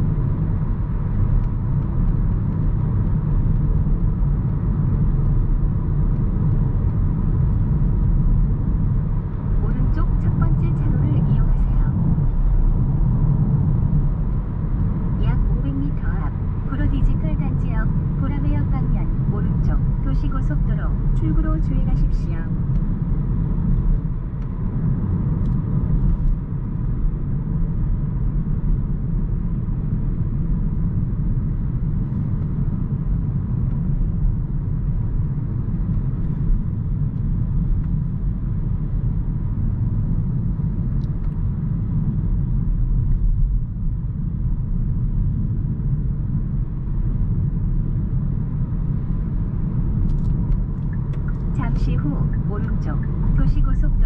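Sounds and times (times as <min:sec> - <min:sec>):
road and tyre rumble in car cabin: 0:00.0 - 0:54.0.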